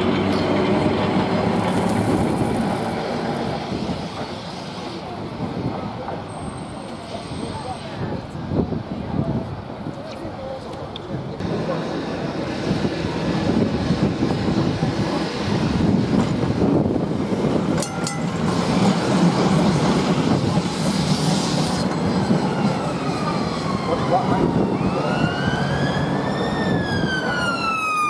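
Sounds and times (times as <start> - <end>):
tram rumbling past: 0.0 - 9.9, 11.2 - 28.0
tram wheels clicking: 11.4 - 23.6
emergency siren wailing: 22.3 - 28.0.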